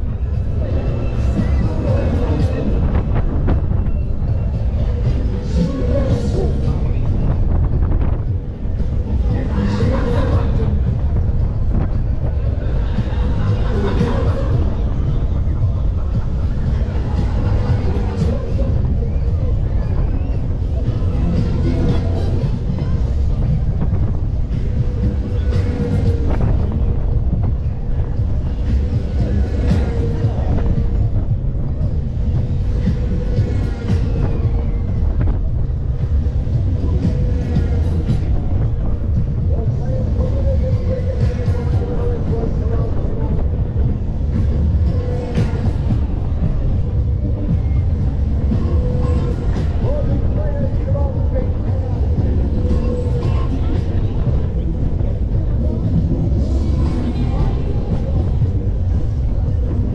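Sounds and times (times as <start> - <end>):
fairground music with singing: 0.0 - 59.9
steady hum: 0.0 - 59.9
wind rumble on microphone: 0.0 - 59.9.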